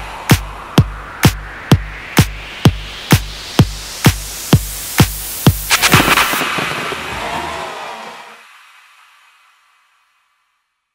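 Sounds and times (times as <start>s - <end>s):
fireworks crackling and rumbling: 5.5s - 8.1s.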